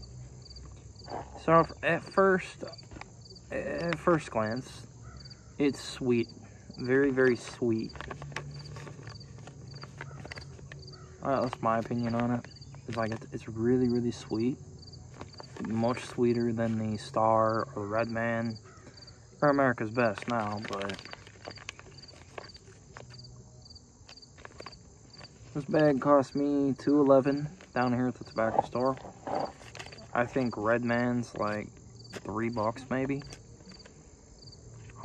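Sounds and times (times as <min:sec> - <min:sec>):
insects chirping: 0:00.0 - 0:35.0.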